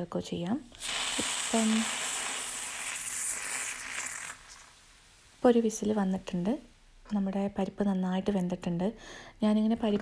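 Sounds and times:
steam hissing from pressure cooker: 0.7 - 4.7.

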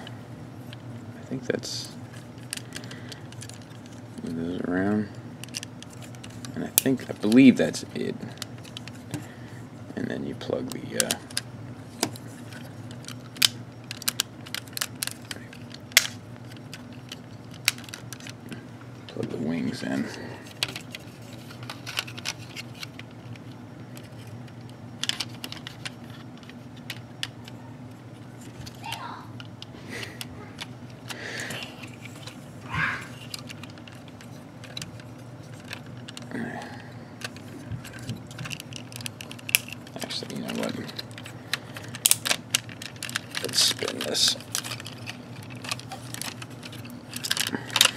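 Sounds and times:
plastic toy parts clicking: 5.4 - 7.6, 10.7 - 11.4, 12.5 - 18.4, 20.5 - 23.4, 25.0 - 27.4, 33.2 - 36.3, 37.2 - 47.9.

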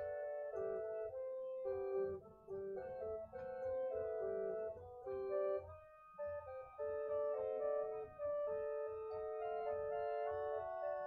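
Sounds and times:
organ chords: 0.0 - 11.0.

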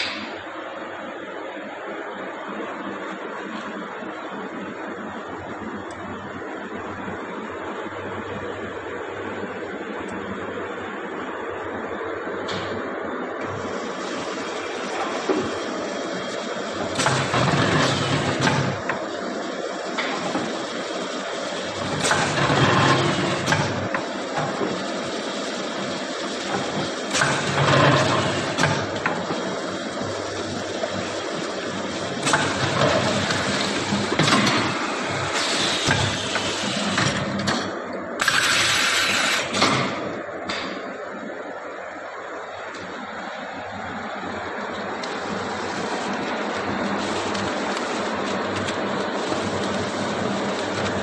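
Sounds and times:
packaging machine running: 13.4 - 40.7, 42.4 - 51.0.

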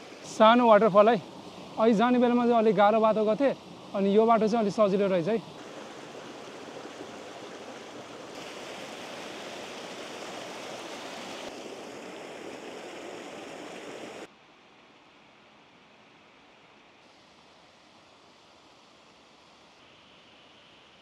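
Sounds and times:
stream rushing over boulders: 0.0 - 14.3.

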